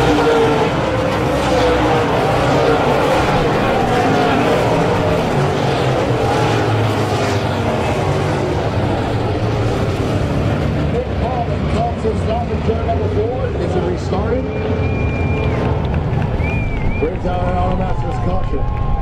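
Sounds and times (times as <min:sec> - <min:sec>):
race car engines running: 0:00.0 - 0:19.0
people talking: 0:10.9 - 0:14.6, 0:17.0 - 0:18.6.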